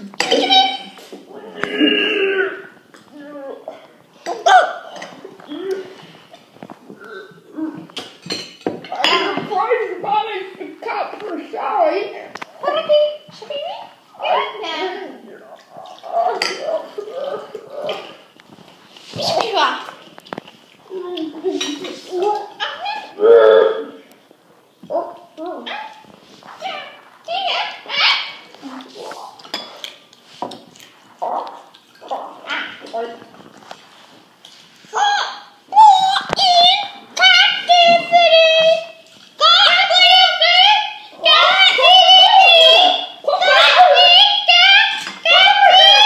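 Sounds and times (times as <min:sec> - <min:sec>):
child talking: 0:00.2 - 0:05.9, 0:08.9 - 0:18.2, 0:19.2 - 0:20.0, 0:20.8 - 0:24.0, 0:24.9 - 0:25.9, 0:26.6 - 0:29.3, 0:34.9 - 0:46.0.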